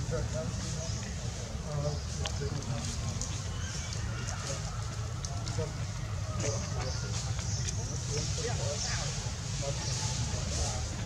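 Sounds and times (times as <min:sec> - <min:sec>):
faint distant voices: 0:00.0 - 0:11.0
light crackles: 0:00.7 - 0:08.4.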